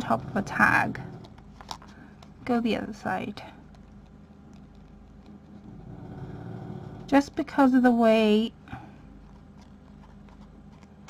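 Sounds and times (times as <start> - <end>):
paper handling taps and rustles: 9.2 - 11.0.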